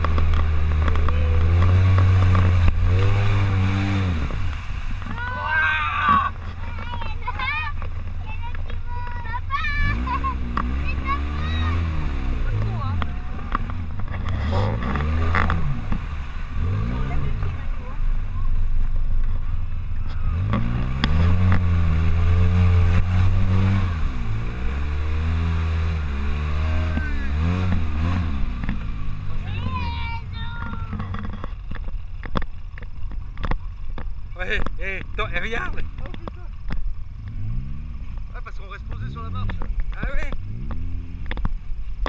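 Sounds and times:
vehicle engine revving: 0:00.0 - 0:42.0.

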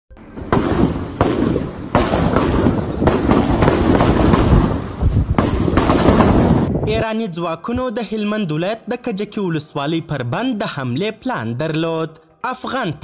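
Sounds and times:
sharp gunshots: 0:00.3 - 0:06.9
crackle of gunfire: 0:00.4 - 0:06.7.

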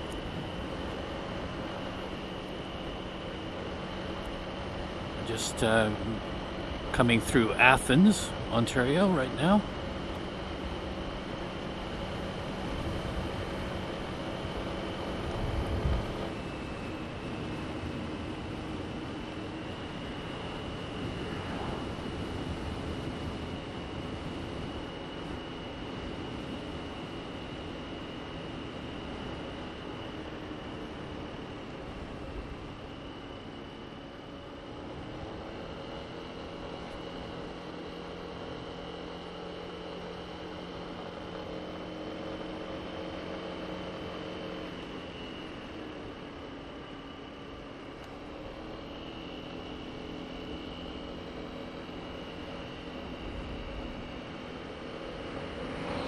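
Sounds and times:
scooter engine running: 0:00.0 - 0:56.0
steady high whine: 0:00.0 - 0:56.0.

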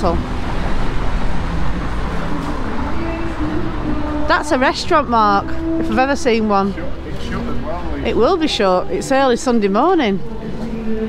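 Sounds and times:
murmur of people talking: 0:00.0 - 0:11.0
traffic rumble: 0:00.0 - 0:11.0.

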